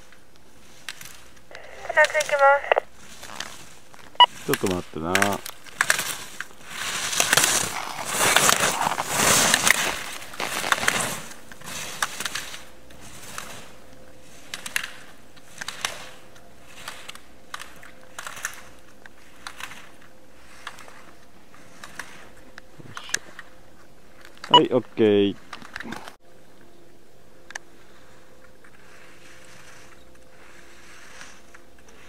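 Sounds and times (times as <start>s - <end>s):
skis scraping over snow: 0.0s - 23.4s, 27.7s - 32.0s.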